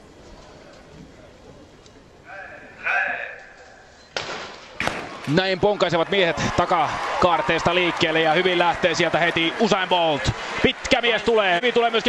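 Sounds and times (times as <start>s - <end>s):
hushed stadium crowd: 4.6s - 12.0s.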